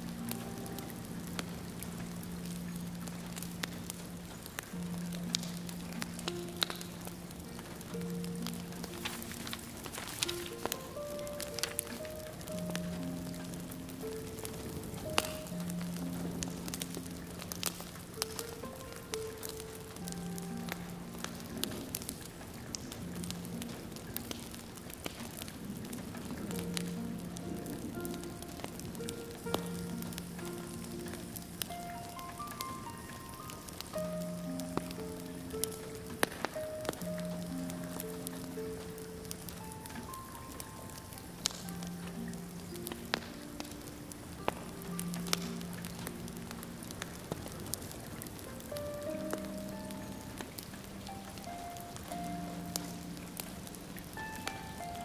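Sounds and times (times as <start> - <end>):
rain pattering on a window: 0.0 - 55.0
soft slow instrumental melody: 0.0 - 55.0
wood fire crackling and popping: 0.0 - 55.0.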